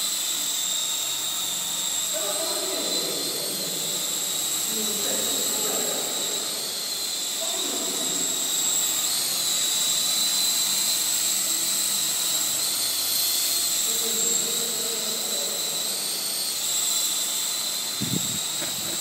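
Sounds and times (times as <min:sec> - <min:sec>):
rc helicopter whine: 0:00.0 - 0:19.0.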